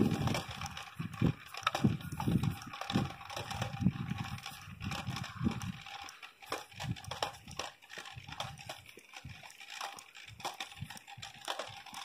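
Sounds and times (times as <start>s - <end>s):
footsteps on asphalt: 0.0s - 12.0s.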